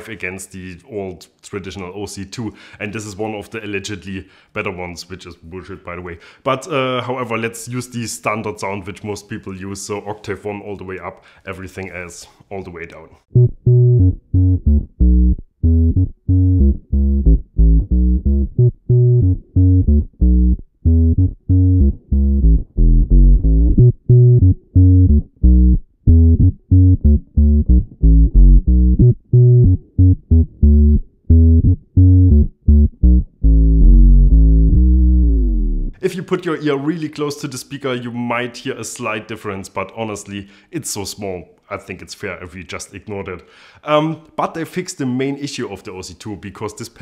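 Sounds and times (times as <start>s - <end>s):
low electric bass notes: 13.3s - 36.0s.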